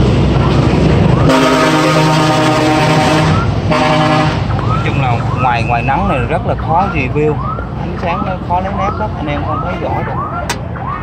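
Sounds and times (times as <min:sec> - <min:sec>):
vehicle horn blasts: 0:01.3 - 0:04.5.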